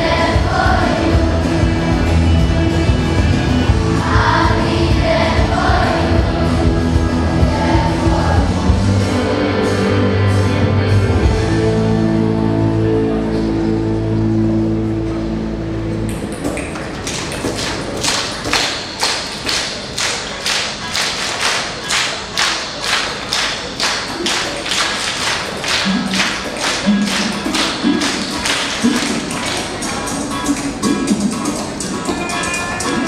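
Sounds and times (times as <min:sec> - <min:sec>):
children clapping in unison: 0:16.1 - 0:30.8.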